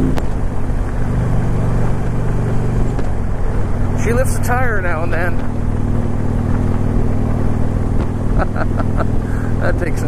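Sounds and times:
motorcycle engine running: 0.0s - 10.0s
person laughing: 8.3s - 9.7s.

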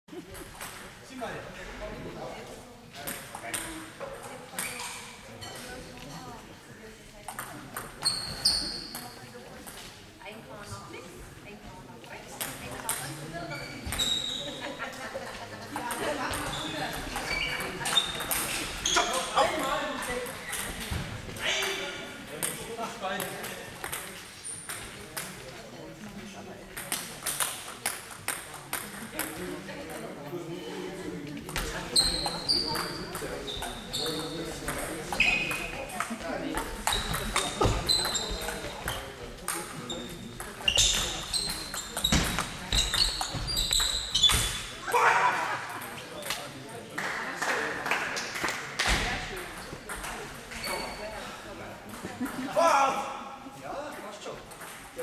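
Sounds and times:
murmur of voices: 0.1s - 55.0s
short high squeak: 13.5s - 14.5s
table tennis balls clicking: 15.8s - 20.8s, 22.4s - 25.5s, 26.8s - 29.4s.

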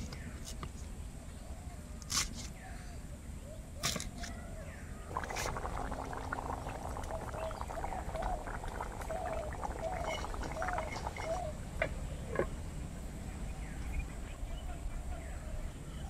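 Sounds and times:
curry bubbling in a pot: 5.1s - 11.6s.

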